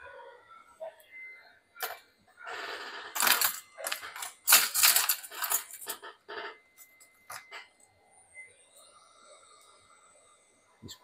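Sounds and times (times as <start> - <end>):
small metal objects clinking: 3.2 - 6.1.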